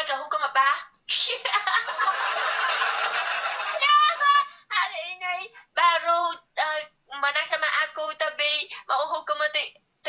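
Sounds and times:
woman talking: 0.0 - 1.8, 3.8 - 9.8
woman laughing: 1.2 - 4.3.

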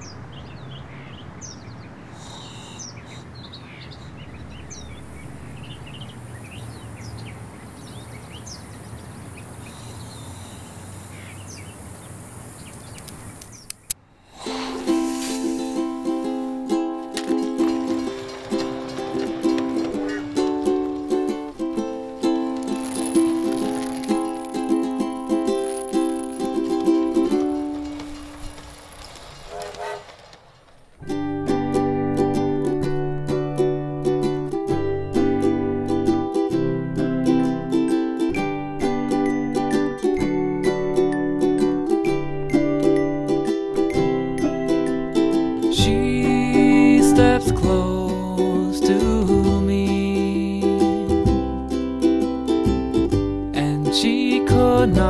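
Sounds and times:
birds chirping: 0.0 - 31.1
steady background hiss: 3.7 - 17.4
plucked string instrumental: 14.4 - 28.8, 31.0 - 55.0.

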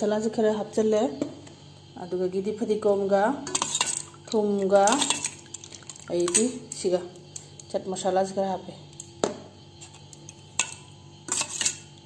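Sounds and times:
spoon scraping metal bowl: 3.4 - 4.2, 9.8 - 11.9.

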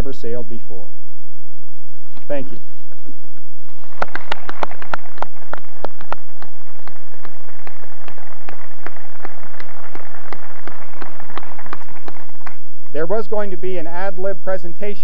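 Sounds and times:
audience applauding: 3.9 - 12.6.

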